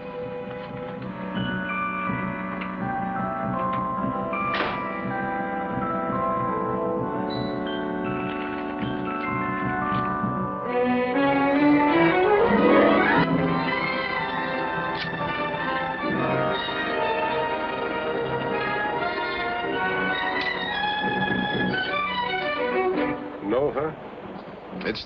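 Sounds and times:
orchestral music led by strings: 0:00.0 - 0:25.0.

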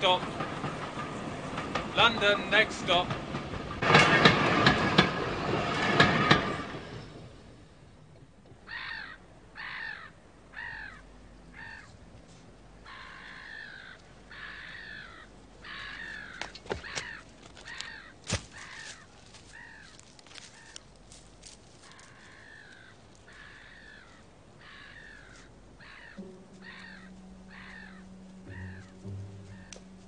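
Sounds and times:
train clattering rumble: 0:00.0 - 0:08.6, 0:12.6 - 0:30.0
crows cawing: 0:08.7 - 0:11.9, 0:12.8 - 0:20.8, 0:21.8 - 0:30.0.

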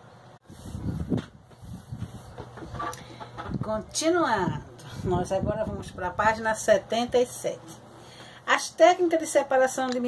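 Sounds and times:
knocks and rustling near microphone: 0:01.0 - 0:03.9.

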